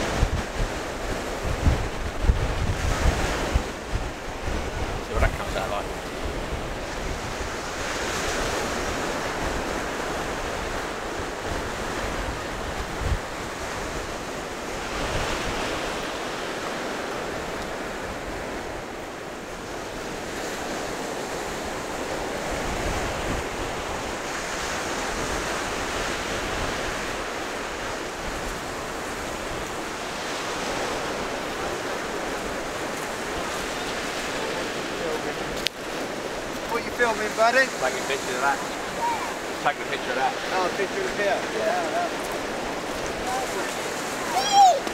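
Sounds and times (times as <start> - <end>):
surf breaking on beach: 0.0 - 44.9
wind buffeting microphone: 0.0 - 44.9.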